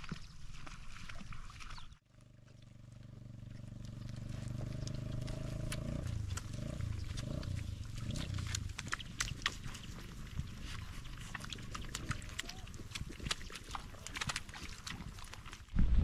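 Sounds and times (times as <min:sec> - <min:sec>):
sheep tearing grass: 0:03.5 - 0:15.7.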